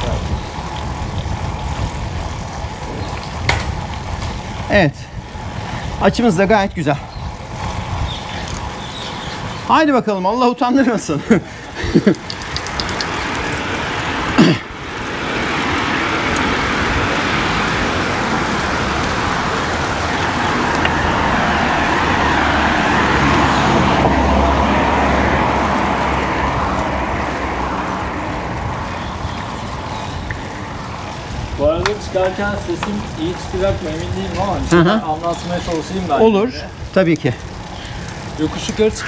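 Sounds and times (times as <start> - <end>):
traffic on wet street: 0.0 - 39.0
car passing: 11.3 - 39.0.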